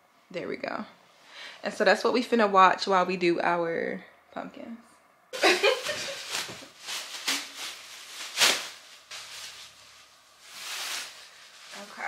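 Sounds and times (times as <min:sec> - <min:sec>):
plastic bag rustling and crinkling: 0:05.4 - 0:12.0.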